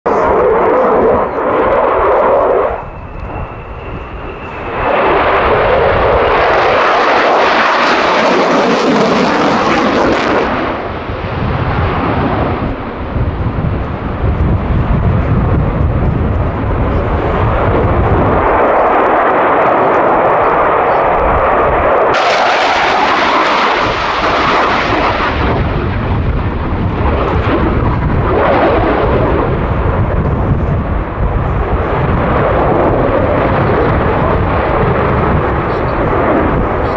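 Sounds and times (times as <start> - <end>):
thin steady whine: 0.1 - 6.2
jet engines roaring: 0.1 - 36.9.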